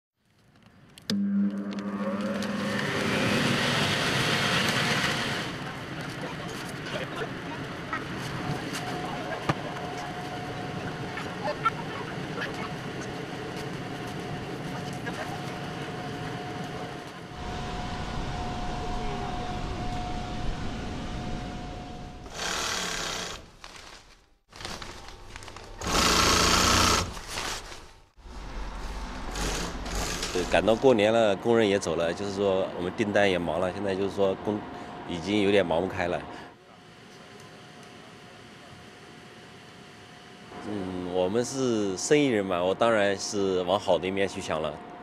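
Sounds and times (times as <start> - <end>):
electric blower rushing air: 1.1 - 5.8
sewing machine stitching: 25.8 - 27.7.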